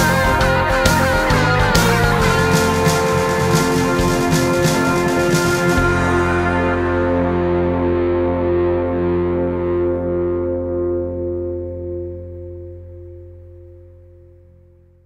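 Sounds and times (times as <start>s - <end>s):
acoustic guitar chord: 0.0s - 14.9s
held low bass note: 0.0s - 15.0s.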